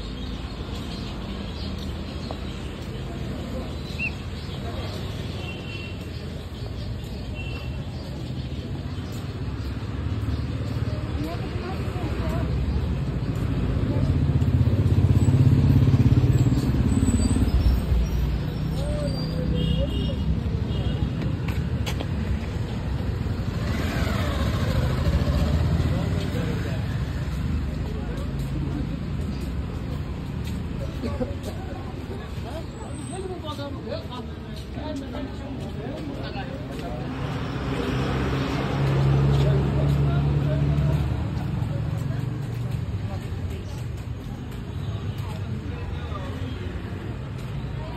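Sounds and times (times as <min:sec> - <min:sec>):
vehicle engine passing by: 0:10.0 - 0:18.9, 0:23.0 - 0:29.8, 0:36.7 - 0:43.2.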